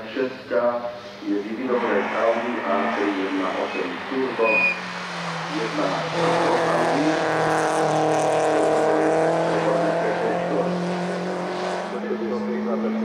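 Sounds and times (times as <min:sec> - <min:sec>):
car engine passing: 0:00.7 - 0:13.0.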